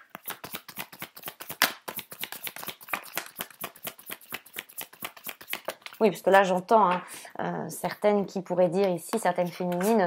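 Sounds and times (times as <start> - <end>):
cards being shuffled: 0.0 - 6.0.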